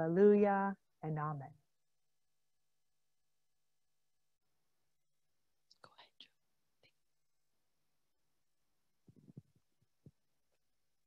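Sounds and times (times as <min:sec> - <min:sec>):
faint whisper: 0:05.7 - 0:07.1.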